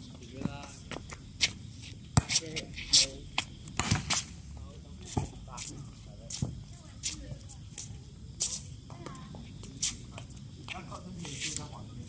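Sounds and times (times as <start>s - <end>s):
distant talk among players: 1.8s - 12.0s.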